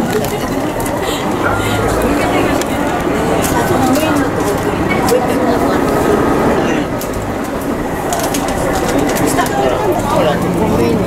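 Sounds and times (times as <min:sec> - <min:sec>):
passengers chattering: 0:00.0 - 0:11.0
train rumbling: 0:00.0 - 0:11.0.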